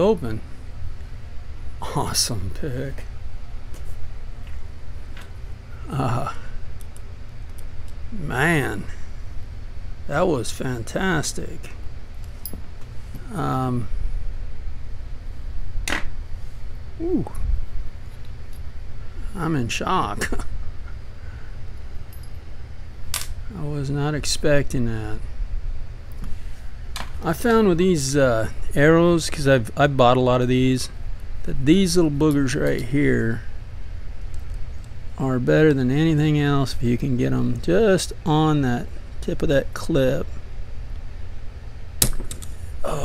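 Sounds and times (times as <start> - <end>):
sharp metallic click: 42.0 - 42.5.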